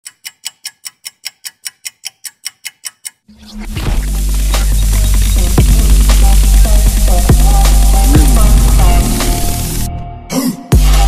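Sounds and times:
crisp ticking: 0:04.2 - 0:09.9.

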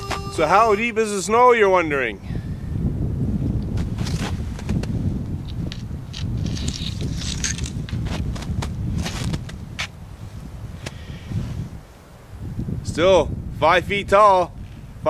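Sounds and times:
wind on microphone: 0:00.0 - 0:15.0
stick crunching in snow: 0:06.2 - 0:09.9.

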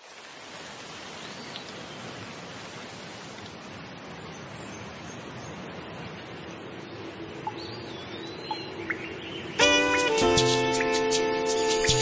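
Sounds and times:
steady rain hiss: 0:00.0 - 0:12.0
faint bird chirps: 0:04.3 - 0:09.7
loud sustained music chord: 0:09.5 - 0:12.0.

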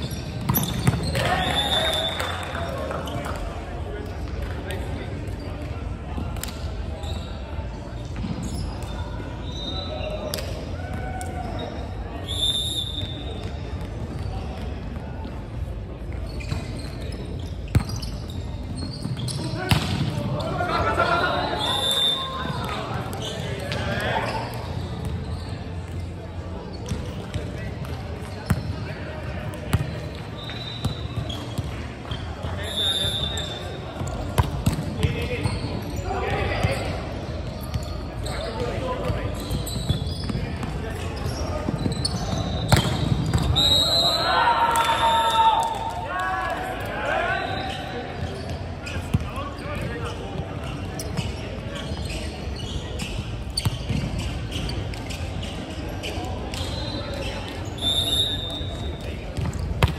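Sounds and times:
sneakers squeaking on court: 0:00.0 - 0:03.4, 0:06.6 - 0:10.6, 0:11.4 - 0:20.7, 0:21.6 - 0:44.2, 0:47.4 - 0:59.9
players calling and shouting: 0:16.4 - 0:26.8, 0:29.7 - 0:53.1.

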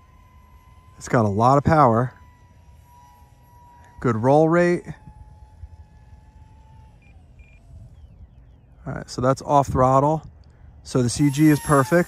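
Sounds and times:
model plane electric motors whining: 0:00.0 - 0:12.0.

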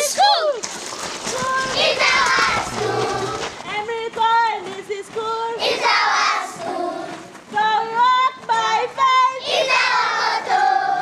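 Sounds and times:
children singing: 0:01.6 - 0:03.6, 0:05.6 - 0:07.3, 0:08.5 - 0:11.0.

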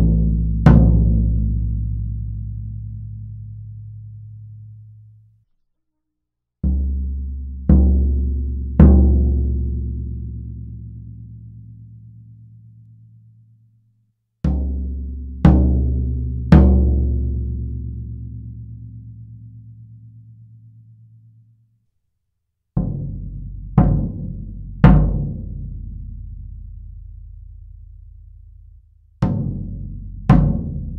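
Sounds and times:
floor tom struck with mallet: 0:14.5 - 0:17.6, 0:22.8 - 0:26.2, 0:29.2 - 0:30.9.

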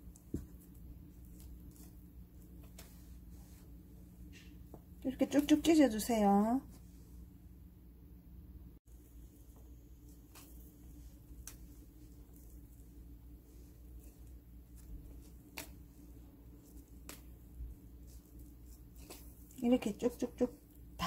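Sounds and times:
hands tearing wet leaves: 0:00.0 - 0:02.9, 0:14.0 - 0:19.9
low steady hum: 0:00.0 - 0:21.0.

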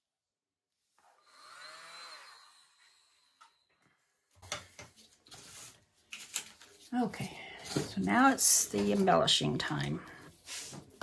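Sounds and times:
small electric blower whining: 0:01.0 - 0:03.7.

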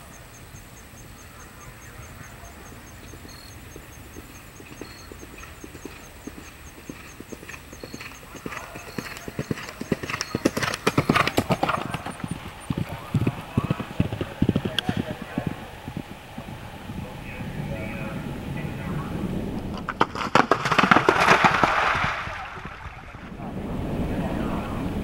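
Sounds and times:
horse hoofbeats cantering on dirt: 0:00.6 - 0:23.0.

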